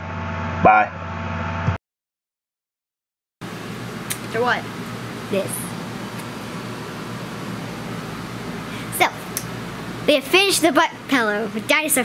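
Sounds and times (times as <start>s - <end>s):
fan hiss with low hum: 3.4s - 12.0s.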